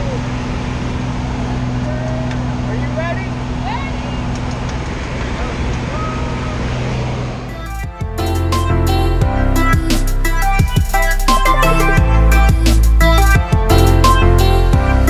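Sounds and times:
airplane engine and propeller drone: 0.0s - 8.4s
music: 7.5s - 15.0s.

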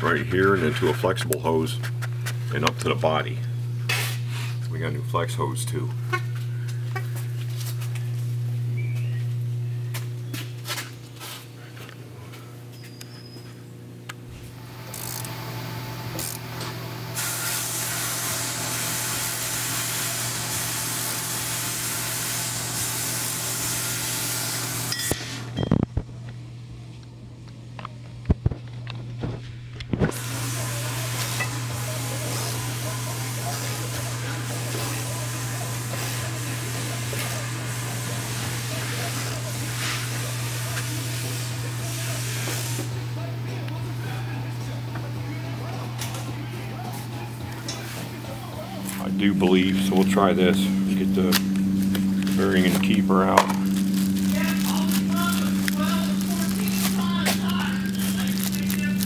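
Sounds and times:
low hum: 48.6s - 59.0s.

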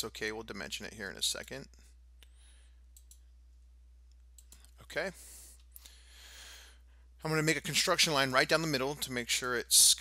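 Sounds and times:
low electrical hum: 0.0s - 10.0s
computer mouse clicks: 2.9s - 3.3s, 4.1s - 4.8s.

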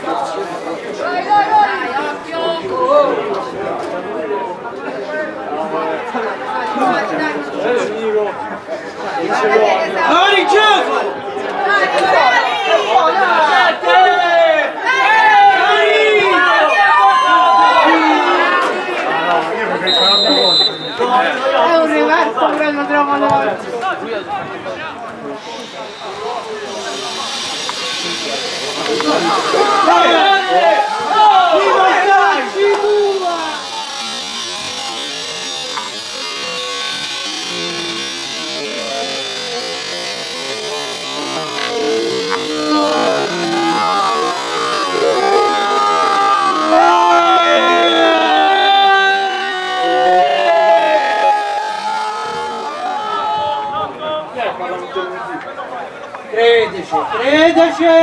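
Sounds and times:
people shouting and calling: 0.0s - 58.0s.

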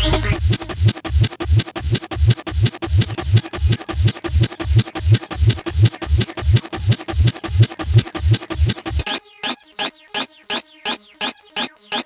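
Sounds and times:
chopped electronic drum hits: 0.0s - 9.0s
pulsing synth bass: 0.0s - 9.1s.

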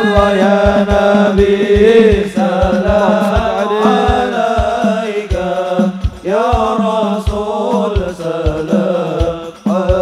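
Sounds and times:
low drum beat: 0.0s - 10.0s
men singing devotional song: 0.0s - 10.0s.

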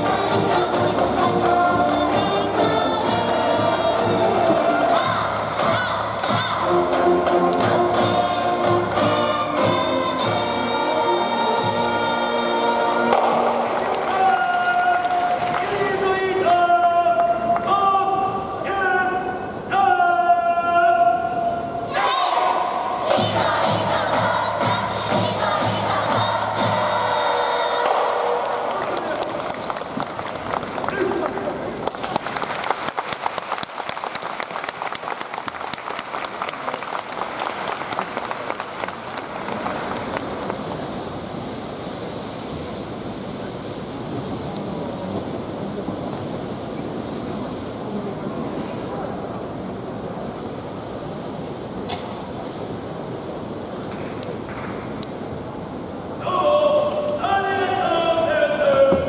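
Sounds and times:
audience applause and cheering: 3.6s - 9.6s, 12.7s - 16.4s, 27.8s - 41.4s
crowd murmur: 42.1s - 56.2s.

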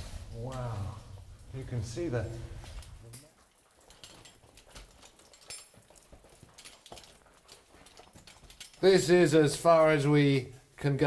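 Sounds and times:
gear clicking: 1.5s - 10.1s.

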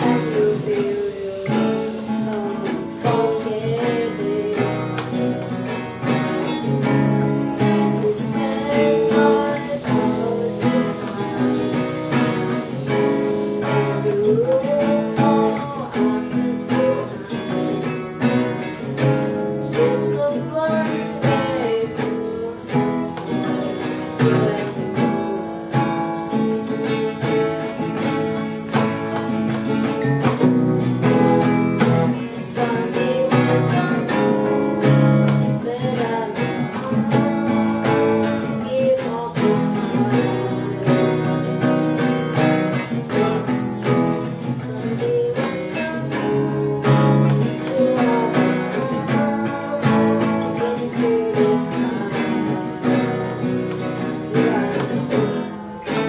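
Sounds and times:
acoustic guitar strumming: 0.0s - 56.0s
boy singing rock song: 0.0s - 56.0s.

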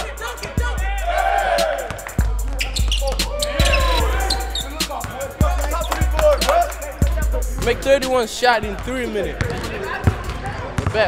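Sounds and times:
music with heavy bass: 0.0s - 10.0s
basketballs bouncing on wooden floor: 8.5s - 11.0s.

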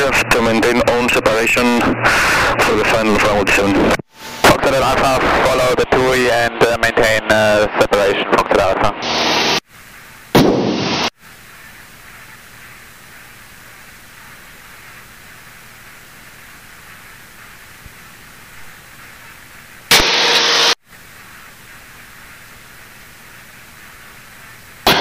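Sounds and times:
radio static burst: 0.0s - 9.6s, 10.4s - 11.2s, 19.9s - 20.8s.

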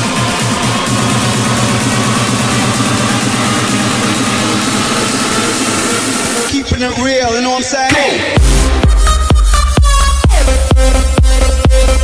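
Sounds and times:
distorted synth bass: 0.0s - 6.6s.

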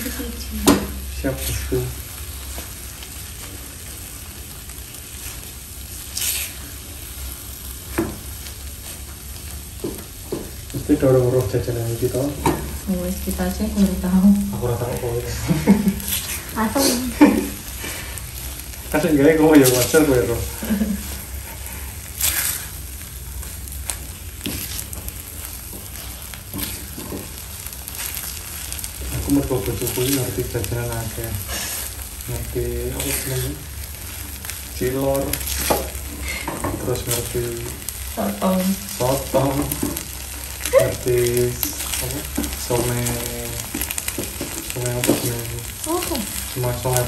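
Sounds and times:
dough mixture frying in a pan: 0.0s - 47.0s
voices: 45.0s - 46.4s.

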